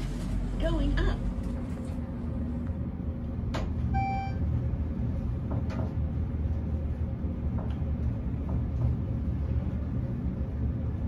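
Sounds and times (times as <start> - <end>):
elevator car rumbling: 0.0 - 11.0
short electronic beep: 3.9 - 4.4.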